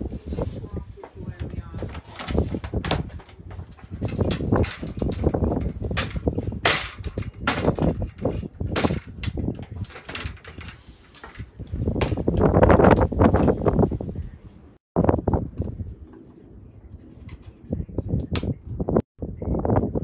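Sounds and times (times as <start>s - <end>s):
knocks and clatter of climbing: 1.0s - 13.8s.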